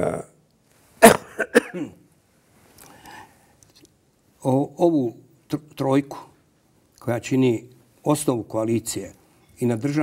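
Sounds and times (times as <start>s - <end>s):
person clearing throat: 1.0s - 2.0s
person coughing: 1.0s - 2.0s.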